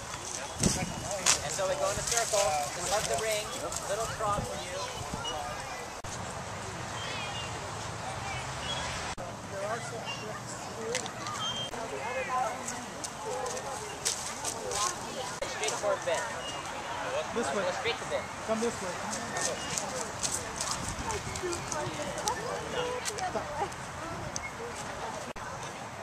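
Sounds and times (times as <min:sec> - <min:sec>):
footsteps on dry leaves: 0:00.0 - 0:04.6
people talking in background: 0:00.0 - 0:26.0.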